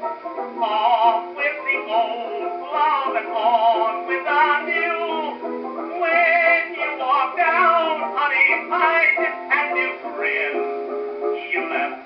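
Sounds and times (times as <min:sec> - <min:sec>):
old dance orchestra record: 0:00.0 - 0:12.0.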